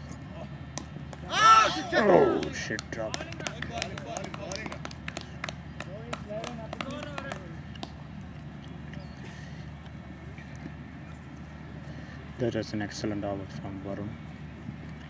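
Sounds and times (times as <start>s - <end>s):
distant voices calling: 0.0s - 12.4s.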